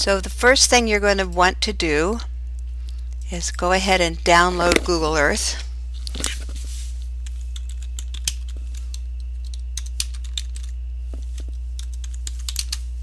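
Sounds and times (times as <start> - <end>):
low hum: 0.0 - 13.0
keyboard typing: 7.6 - 10.8.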